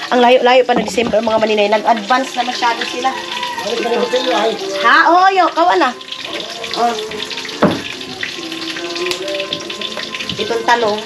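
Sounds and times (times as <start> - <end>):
faint music of held notes: 0.0 - 11.0
food sizzling in a pan: 0.0 - 11.0
knock: 0.8 - 1.4, 7.6 - 7.9.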